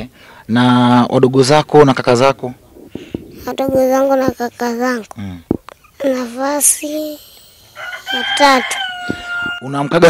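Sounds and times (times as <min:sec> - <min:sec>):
rooster crowing: 0:07.7 - 0:10.0.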